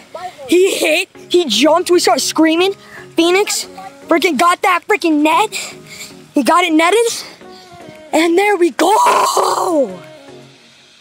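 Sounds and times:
young man yelling excitedly: 0.0s - 0.8s, 8.2s - 10.0s
quiet background music: 0.0s - 11.0s.

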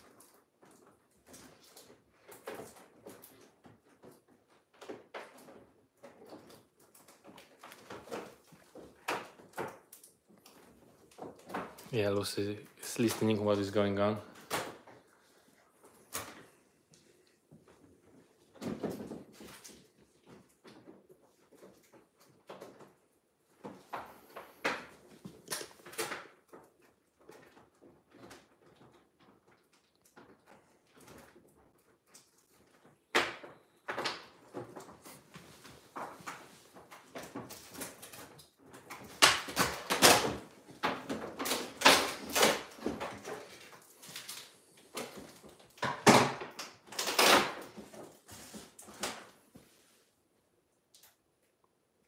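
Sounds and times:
toy packaging rustling and crinkling: 34.5s - 49.4s.

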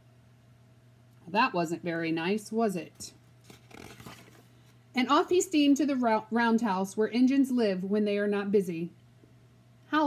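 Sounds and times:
page turning rustle: 3.4s - 4.8s.

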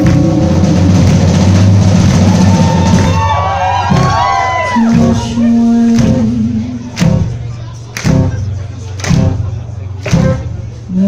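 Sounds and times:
live rock band: 0.0s - 10.6s.

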